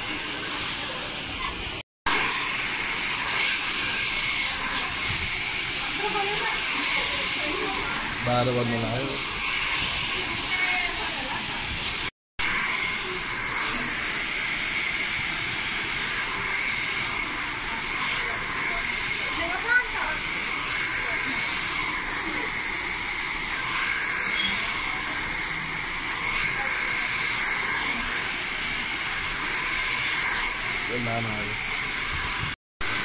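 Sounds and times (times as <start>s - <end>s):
hair dryer running: 0.0s - 33.0s.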